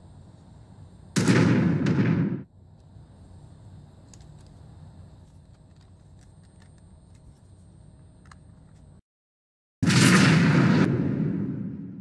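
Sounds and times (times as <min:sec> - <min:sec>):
loud explosion blast: 0:01.2 - 0:02.5, 0:09.8 - 0:12.0.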